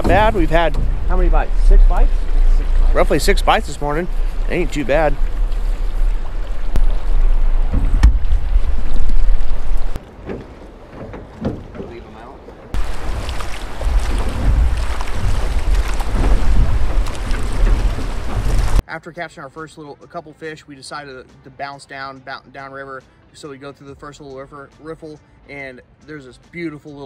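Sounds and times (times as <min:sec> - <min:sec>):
water lapping at boat hull: 0:00.0 - 0:18.8
wind buffeting microphone: 0:00.0 - 0:18.8.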